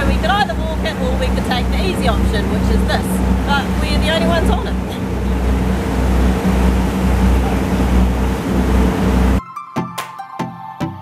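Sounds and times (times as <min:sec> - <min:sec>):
boat engine drone: 0:00.0 - 0:09.4
water rushing: 0:00.0 - 0:09.4.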